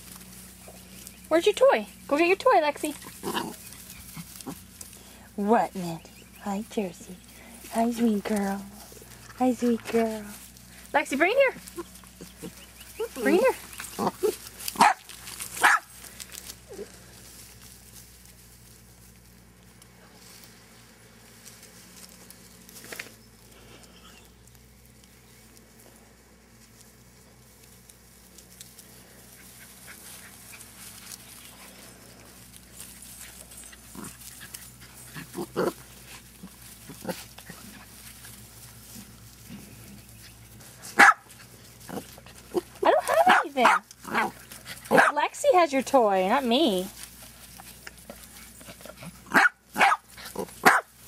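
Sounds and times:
puppies yapping: 0:00.0 - 0:05.3, 0:10.5 - 0:17.2, 0:28.8 - 0:45.6, 0:47.0 - 0:51.0
dogs barking: 0:11.7 - 0:16.0, 0:40.8 - 0:45.2, 0:49.0 - 0:51.0.

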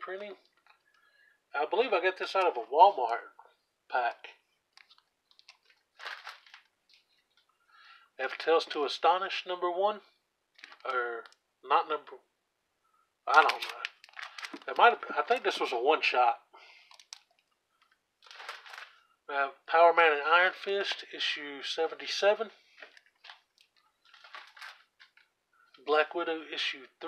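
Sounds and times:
soft plastic rustle: 0:04.1 - 0:07.6, 0:10.5 - 0:11.4, 0:13.3 - 0:15.8, 0:16.7 - 0:19.1, 0:22.5 - 0:25.8
plastic bag crinkling: 0:04.8 - 0:07.4, 0:10.5 - 0:11.4, 0:13.3 - 0:15.7, 0:16.8 - 0:19.0, 0:22.7 - 0:25.3.

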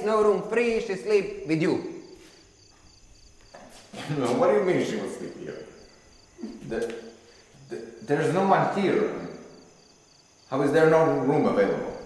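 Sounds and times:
person speaking: 0:00.0 - 0:02.0
crickets chirping: 0:00.0 - 0:12.0.

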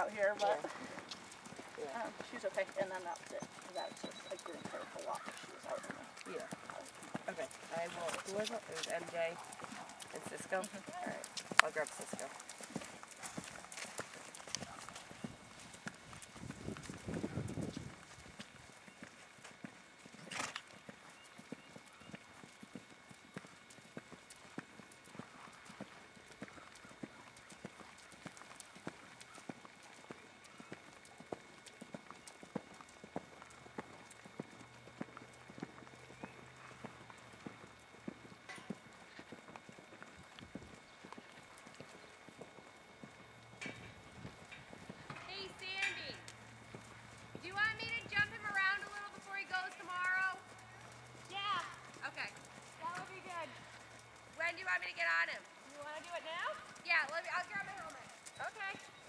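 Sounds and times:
horse hoofbeats on sand: 0:00.0 - 0:59.0.

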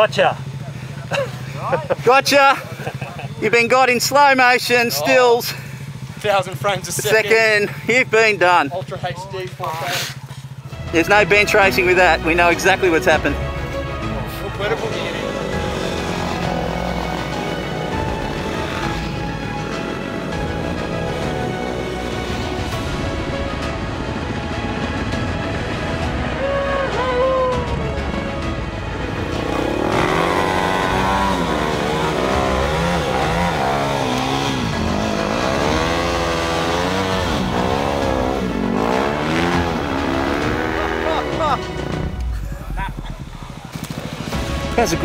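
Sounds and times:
dirt bike engines revving: 0:00.0 - 0:45.0
music: 0:06.5 - 0:45.0.

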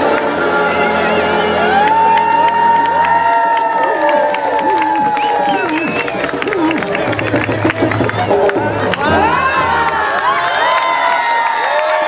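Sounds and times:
dance music: 0:00.0 - 0:03.4, 0:04.9 - 0:11.1
crowd cheering and shouting: 0:00.0 - 0:12.0.

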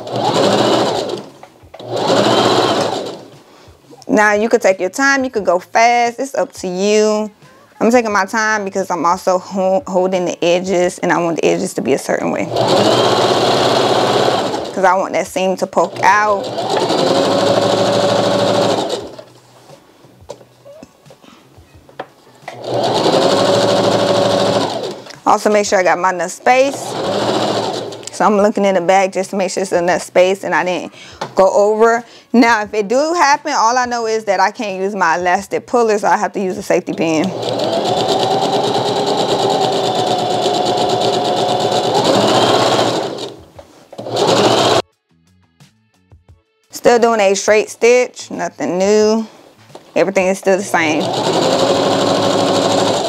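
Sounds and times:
sewing machine stitching: 0:00.0 - 0:03.3, 0:12.4 - 0:14.8, 0:15.8 - 0:19.3, 0:22.5 - 0:25.1, 0:26.6 - 0:28.2, 0:37.2 - 0:43.4, 0:44.0 - 0:44.8, 0:50.8 - 0:53.0.

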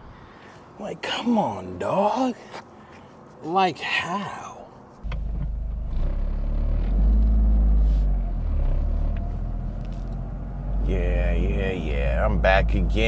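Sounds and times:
car engine rumble: 0:05.0 - 0:13.0.

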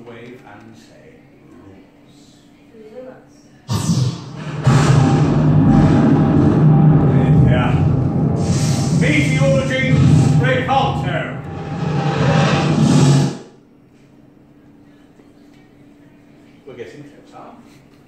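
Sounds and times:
loud theatrical sound effect: 0:03.7 - 0:13.5.

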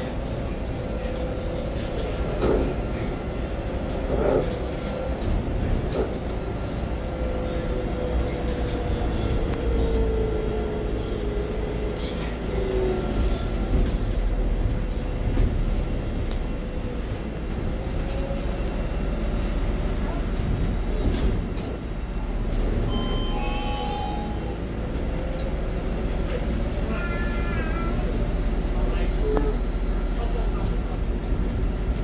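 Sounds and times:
bus cabin rumble: 0:00.0 - 0:32.0.

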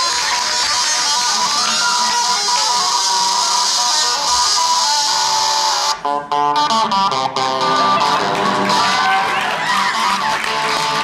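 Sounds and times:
electric guitar music: 0:00.0 - 0:11.0.

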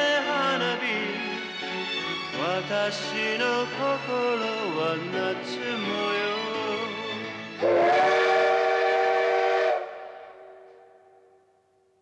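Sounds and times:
whistle-like held chord: 0:07.6 - 0:11.5.

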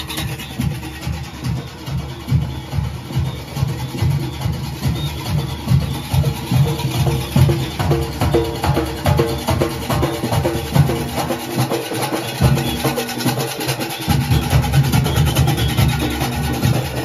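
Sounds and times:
drums beating fast rhythm: 0:00.0 - 0:17.0.

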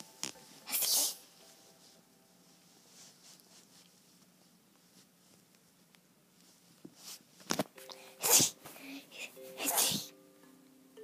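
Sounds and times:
held music notes: 0:00.0 - 0:04.0, 0:07.8 - 0:11.0
person sneezing: 0:08.2 - 0:08.6.

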